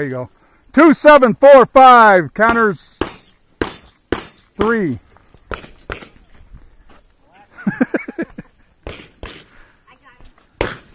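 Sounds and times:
sharp cracks: 2.4 - 6.2, 8.8 - 9.6, 10.6 - 10.9.

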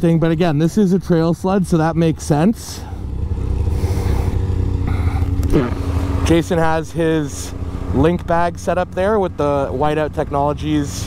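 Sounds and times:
snowmobile engine idling: 0.0 - 11.0.

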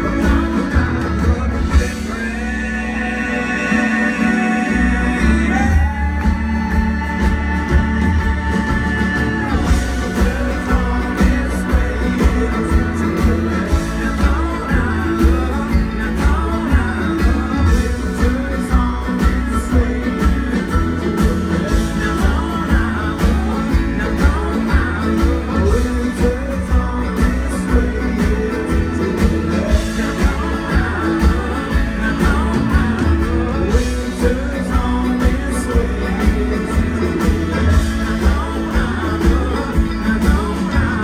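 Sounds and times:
folk-rock band playing: 0.0 - 41.0.

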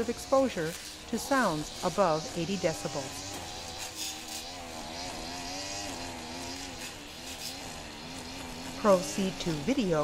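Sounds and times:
lawn mower engine running: 0.0 - 10.0.

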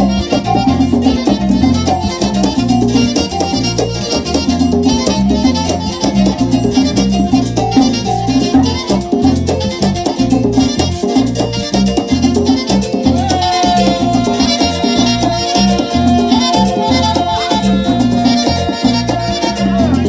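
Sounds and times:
drums: 0.0 - 20.0
pulsing bass line: 0.0 - 20.0.

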